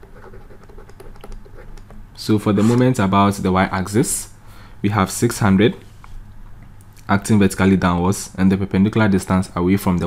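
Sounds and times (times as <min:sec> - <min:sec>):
stylus scratching on tablet: 0:00.0 - 0:03.0.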